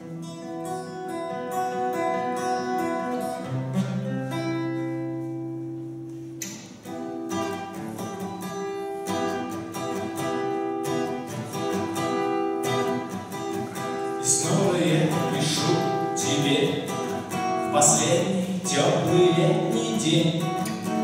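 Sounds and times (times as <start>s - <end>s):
acoustic guitar chords: 0.0s - 21.0s.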